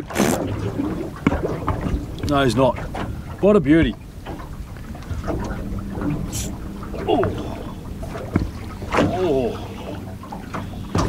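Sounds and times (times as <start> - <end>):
wind and sea rumble: 0.0 - 11.0.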